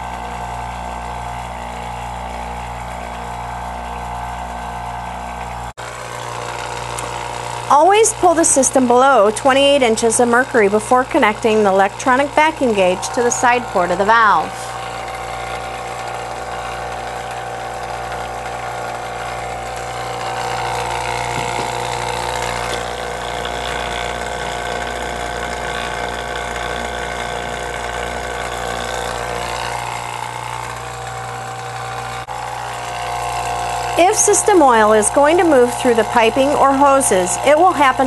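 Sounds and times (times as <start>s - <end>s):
steady whine: 0.0s - 38.0s
vacuum pump motor hum: 0.0s - 38.0s.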